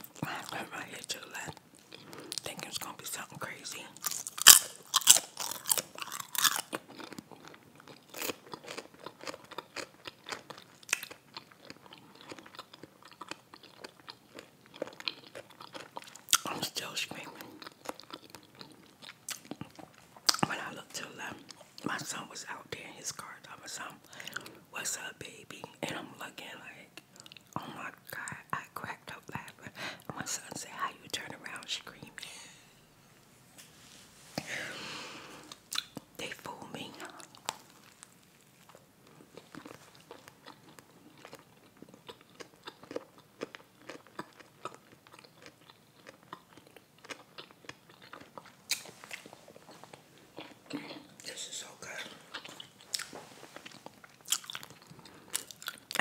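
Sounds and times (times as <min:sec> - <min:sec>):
chewing with crisp crunches: 0:00.0 - 0:22.2, 0:26.7 - 0:28.4, 0:35.4 - 0:56.0
wet mouth sounds: 0:39.3 - 0:56.0.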